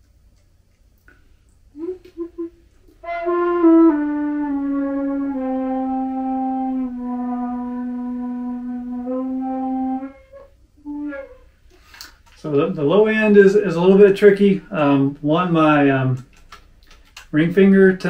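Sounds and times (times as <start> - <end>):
flute playing: 1.8 - 11.5.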